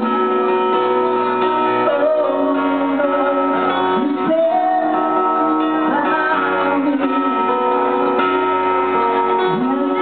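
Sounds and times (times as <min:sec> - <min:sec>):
rock band playing chords: 0:00.0 - 0:10.0.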